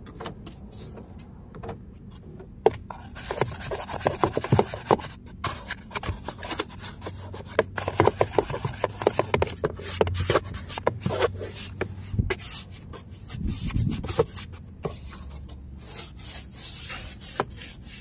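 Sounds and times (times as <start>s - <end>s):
brush scrubbing wet plastic: 3.0s - 18.0s.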